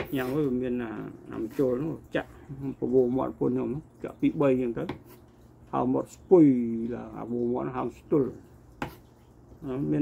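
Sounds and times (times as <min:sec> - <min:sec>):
man talking: 0:00.0 - 0:05.0.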